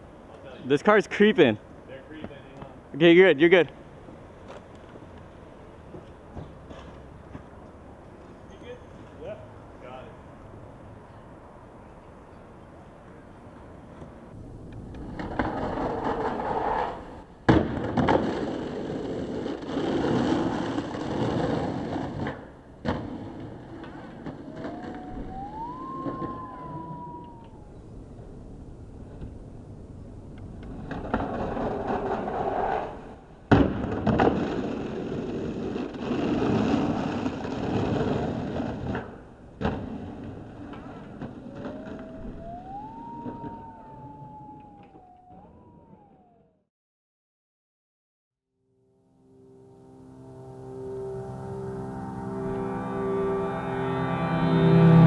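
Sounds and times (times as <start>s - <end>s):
skateboard trucks grinding: 14.8s - 27.6s, 30.5s - 45.9s
skateboard landing clack: 17.4s - 18.7s, 33.5s - 34.7s
rising and falling wail: 24.2s - 27.9s, 41.2s - 46.6s, 50.2s - 55.0s.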